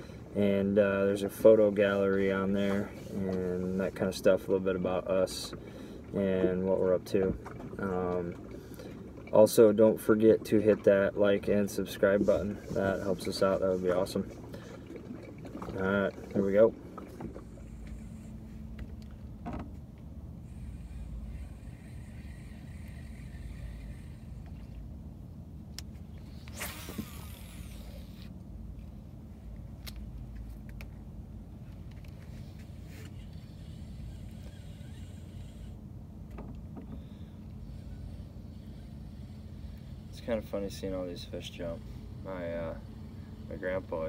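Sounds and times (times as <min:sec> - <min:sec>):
boat motor humming: 0:00.0 - 0:44.0
fishing cast swish: 0:26.3 - 0:28.2.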